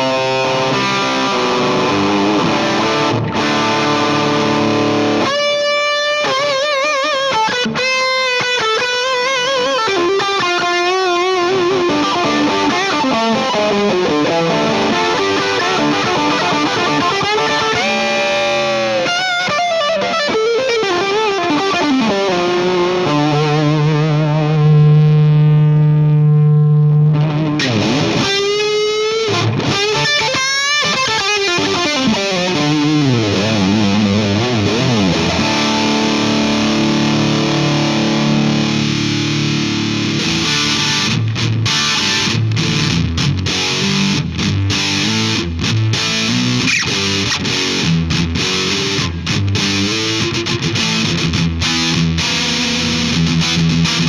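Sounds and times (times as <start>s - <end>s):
overdriven electric guitar: 0.0s - 54.0s.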